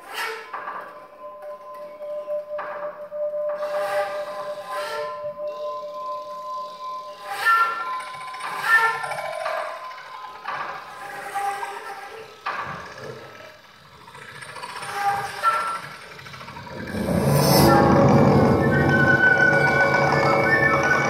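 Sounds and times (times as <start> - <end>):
breathy flute notes: 0.3 - 10.0, 16.5 - 21.0
sparse low sounds: 16.5 - 21.0.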